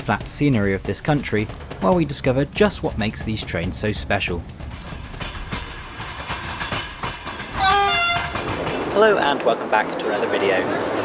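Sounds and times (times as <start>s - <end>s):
train rumbling on rails: 0.0s - 11.0s
train horn: 7.6s - 8.4s.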